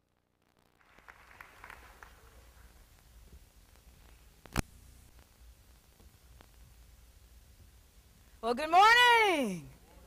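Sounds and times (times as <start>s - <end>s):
faint audience applause: 0.6s - 2.9s
steady low hum: 1.6s - 8.8s.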